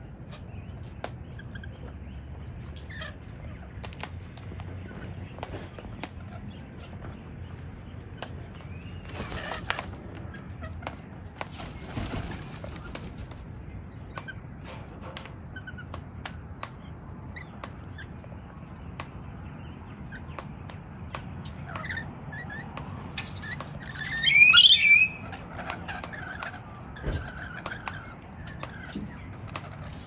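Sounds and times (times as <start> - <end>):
bird chirps: 23.8 - 25.4
parrot harsh screech: 24.0 - 25.4.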